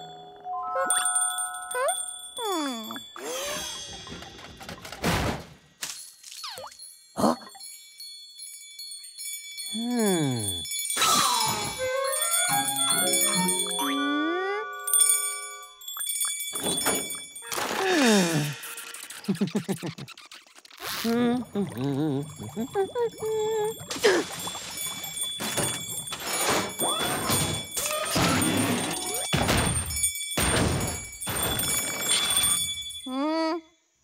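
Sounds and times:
light bell jingles: 6.0 - 13.9
cartoon background music: 11.0 - 15.2.

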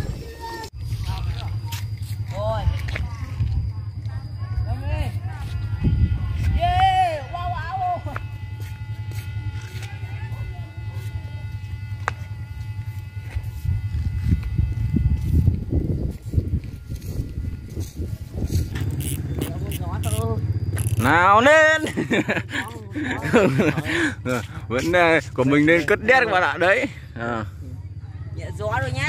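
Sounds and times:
low wind rumble on microphone: 0.0 - 9.1, 11.5 - 21.3
kite flutes whistling: 4.1 - 21.1.

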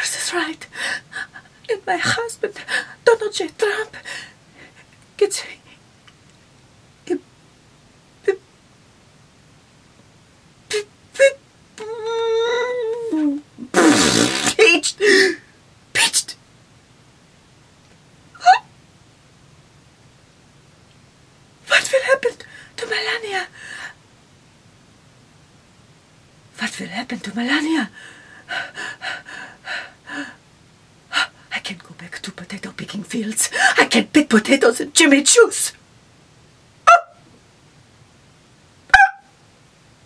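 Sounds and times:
woman gasping: 15.0 - 15.5, 27.9 - 30.4, 33.5 - 33.9
high-pitched animal yips: 38.9 - 39.3.

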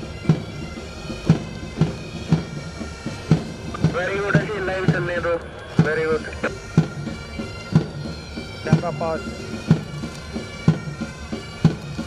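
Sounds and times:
bagpipes playing: 0.0 - 12.0.

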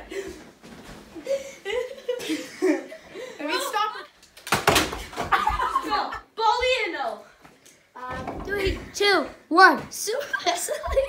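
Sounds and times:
excited voices: 5.2 - 7.2.

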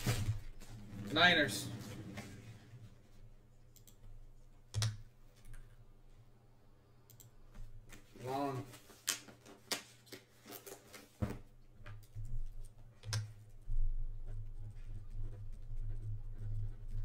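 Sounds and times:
sharp clicks and taps: 4.7 - 5.6.

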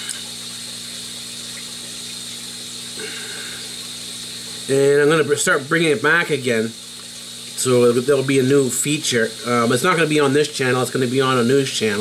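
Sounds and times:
constant hiss: 0.0 - 12.0
low background hum: 0.0 - 12.0.

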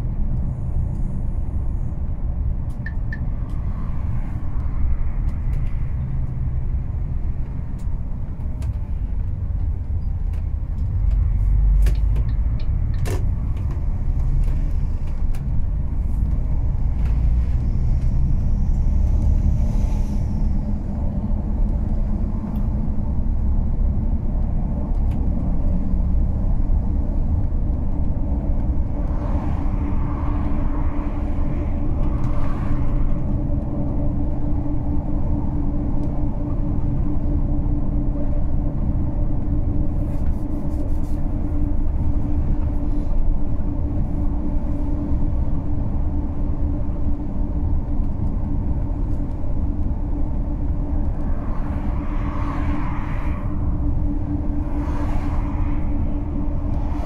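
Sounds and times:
vehicle engine and tyres rumbling: 0.0 - 57.0.

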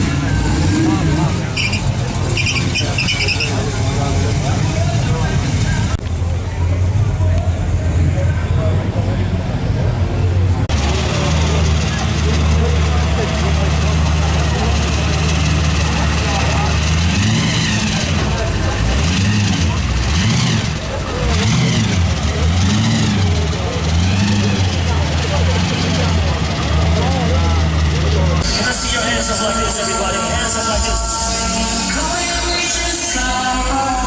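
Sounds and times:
car engine idling and revving: 0.0 - 34.0.

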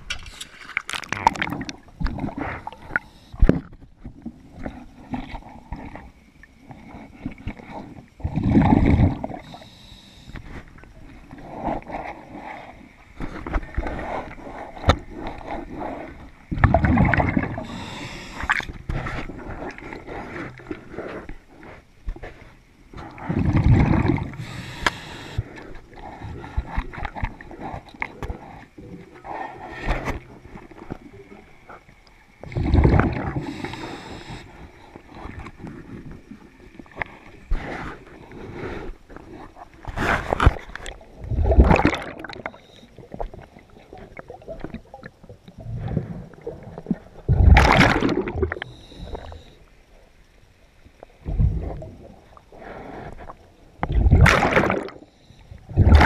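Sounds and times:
exhaled bubbles gushing: 0.9 - 3.6, 8.2 - 9.6, 14.9 - 19.0, 23.1 - 24.6, 32.4 - 33.7, 40.8 - 49.4, 53.8 - 55.0, 55.6 - 56.0
diver breathing through regulator: 9.2 - 10.6, 17.5 - 21.9, 23.0 - 30.2, 32.5 - 36.0, 48.3 - 49.7
regulator hiss: 9.4 - 10.4, 17.5 - 18.6, 24.3 - 25.6, 33.4 - 34.8
soft hiss: 9.4 - 11.4, 17.5 - 23.1, 24.2 - 32.6, 33.3 - 41.2.

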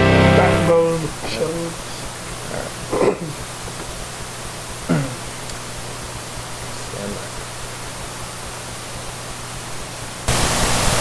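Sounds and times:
low electrical hum: 0.0 - 11.0
steady hiss: 0.0 - 11.0.

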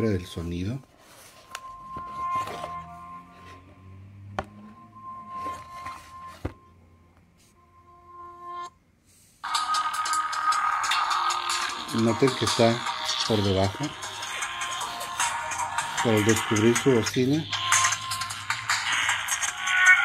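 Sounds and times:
electronic music on small speaker: 1.1 - 8.8, 9.4 - 20.0.

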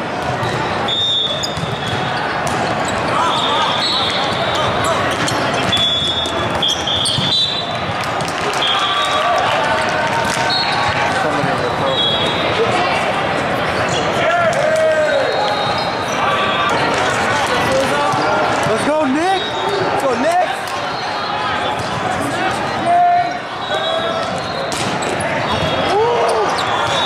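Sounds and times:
many overlapping voices: 0.0 - 27.0
referee whistle blasts: 0.9 - 2.0, 3.2 - 4.8, 5.7 - 7.7, 11.9 - 12.4, 23.6 - 24.9, 26.5 - 27.0
volleyballs struck and bouncing: 1.4 - 3.3, 4.0 - 8.8, 9.8 - 11.8, 24.2 - 25.9.

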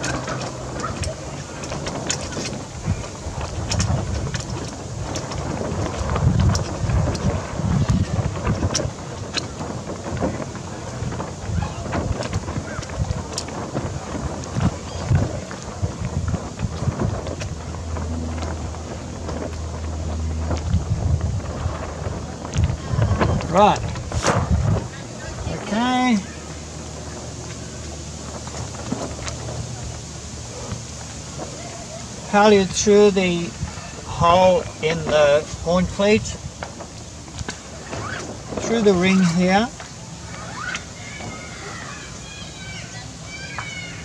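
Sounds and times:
clicks and rustles of rigging: 0.0 - 42.2
wind buffeting microphone: 0.0 - 44.0.

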